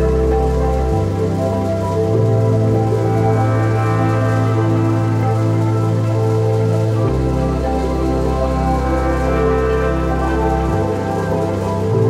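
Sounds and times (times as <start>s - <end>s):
ambient music with held chords: 0.0s - 12.0s.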